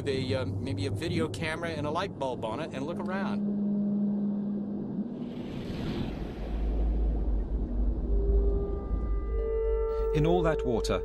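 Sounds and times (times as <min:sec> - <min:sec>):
low sustained drone: 0:00.0 - 0:10.7.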